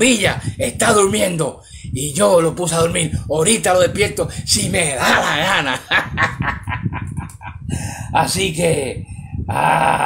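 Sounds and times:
man cackling laugh: 0:05.0 - 0:07.7, 0:09.5 - 0:10.0.

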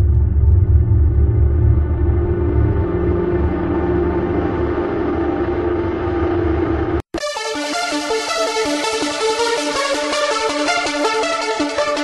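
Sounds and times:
low steady rumble: 0:00.0 - 0:07.0
sustained droning tone: 0:00.0 - 0:07.1.

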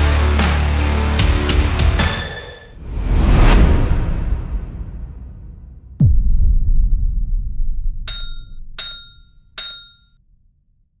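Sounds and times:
deep boom rumble: 0:03.7 - 0:08.0
bright metallic dings: 0:08.1 - 0:10.1.

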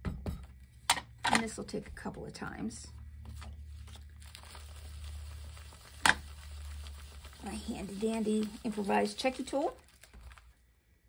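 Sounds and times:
plastic bag crinkling: 0:03.1 - 0:10.7.

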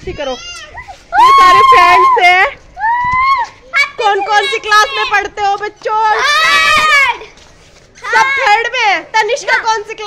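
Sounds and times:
child shouting: 0:02.8 - 0:05.2, 0:06.1 - 0:07.3.

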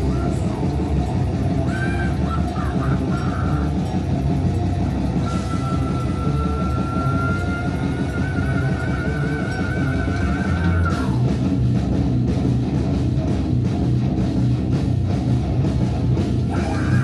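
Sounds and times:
person singing: 0:00.0 - 0:03.8, 0:05.2 - 0:11.3, 0:16.5 - 0:17.0
drums: 0:00.0 - 0:17.0
electric guitar: 0:00.0 - 0:17.0.

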